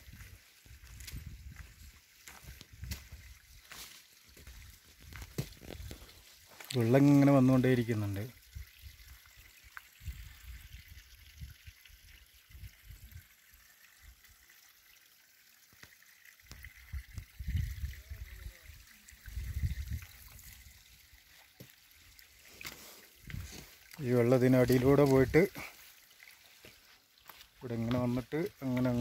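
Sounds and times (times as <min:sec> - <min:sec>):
water trickling over rocks: 0:00.0 - 0:29.0.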